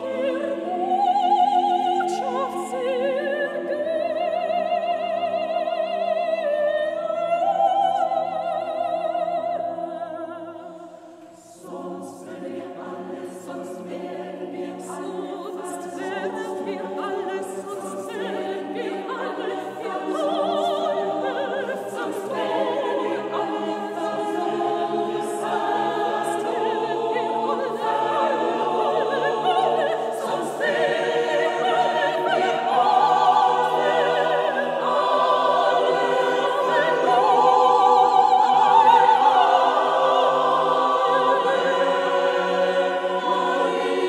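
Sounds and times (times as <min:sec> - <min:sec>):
choir singing: 0:00.0 - 0:44.0.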